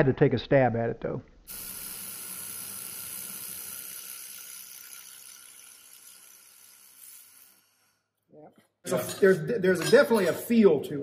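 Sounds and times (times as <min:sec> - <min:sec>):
weld sizzle: 0:01.4 - 0:08.3
hiss of shielding gas: 0:01.5 - 0:04.3.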